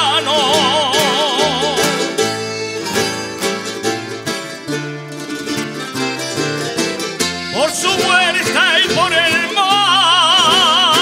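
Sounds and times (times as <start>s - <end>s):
person singing: 0.0s - 2.5s, 7.5s - 11.0s
bass notes: 0.0s - 11.0s
string band playing dance tune: 0.0s - 11.0s.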